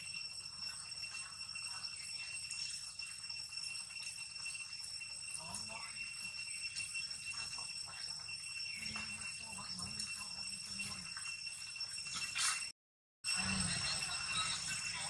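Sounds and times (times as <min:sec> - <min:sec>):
steady high-pitched whine: 0:00.0 - 0:15.0.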